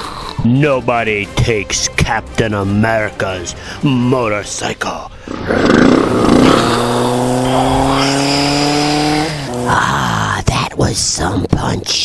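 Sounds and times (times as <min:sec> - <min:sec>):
motorcycle engine: 0:05.3 - 0:10.2.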